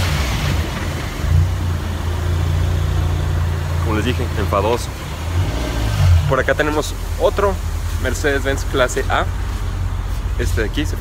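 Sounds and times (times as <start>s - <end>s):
car engine running at low revs: 0.0s - 11.0s.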